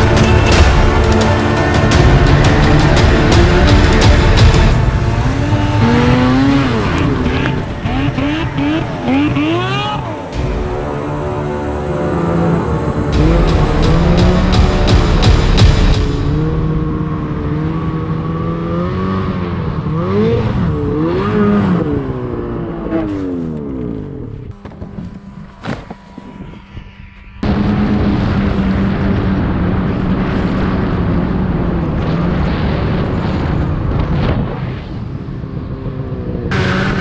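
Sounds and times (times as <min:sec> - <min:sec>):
snowmobile engine running steadily: 0:00.0 - 0:21.4, 0:22.0 - 0:34.2
snowmobile engines revving: 0:00.0 - 0:26.7, 0:36.1 - 0:37.0.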